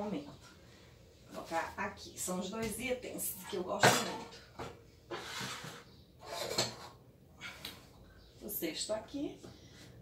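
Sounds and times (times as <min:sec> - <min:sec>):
jar clattering scrape on shelf: 0:05.1 - 0:07.0.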